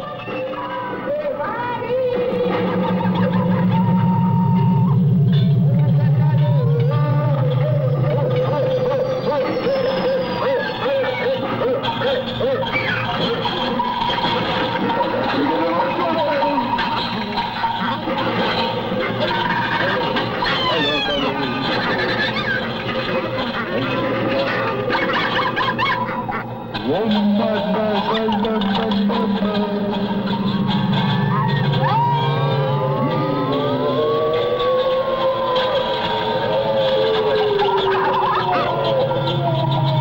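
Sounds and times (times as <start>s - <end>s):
layered voices: 0.0s - 40.0s
electronic music with low drone: 1.1s - 40.0s.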